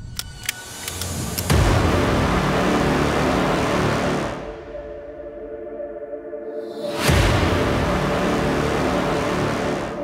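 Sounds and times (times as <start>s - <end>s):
dramatic film score music: 0.0s - 10.0s.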